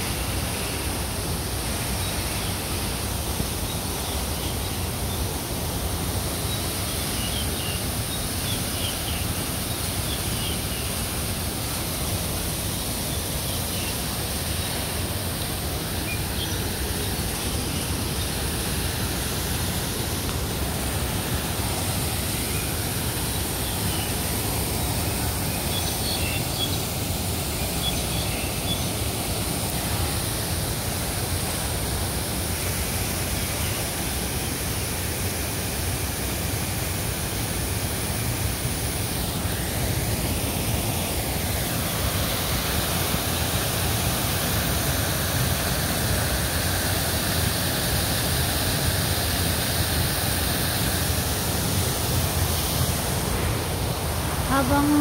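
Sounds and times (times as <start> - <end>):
fountain water splashing: 0.0 - 55.0.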